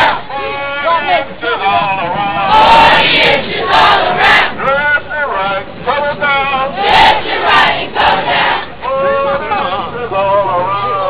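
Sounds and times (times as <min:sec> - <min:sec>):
group chanting a marching cadence: 0:00.0 - 0:00.3, 0:02.3 - 0:04.8, 0:06.6 - 0:08.8.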